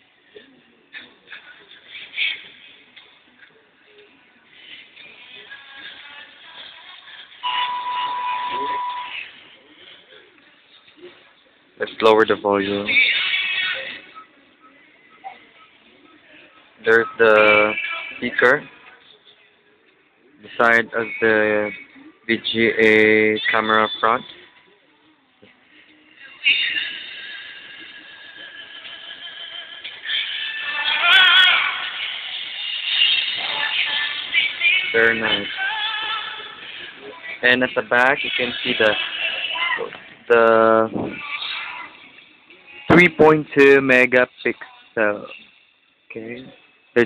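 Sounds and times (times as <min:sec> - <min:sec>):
pop ballad through phone speaker: 0:00.0 - 0:11.2, 0:11.9 - 0:14.7, 0:16.8 - 0:19.0, 0:20.5 - 0:24.5, 0:25.4 - 0:43.7.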